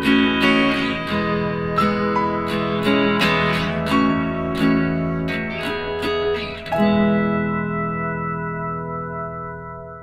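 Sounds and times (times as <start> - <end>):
strummed guitar chords: 0.0 - 10.0.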